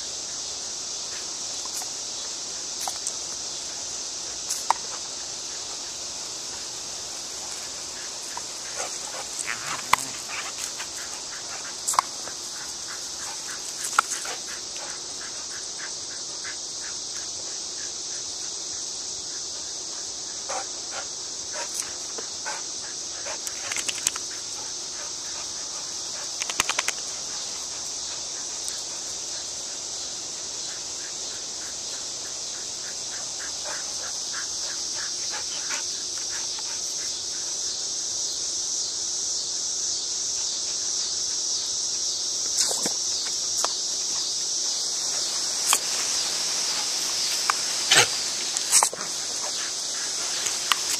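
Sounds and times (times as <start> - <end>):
high-pitched insect chorus: 0.0 - 50.9
sharp clicks: 26.4 - 27.0.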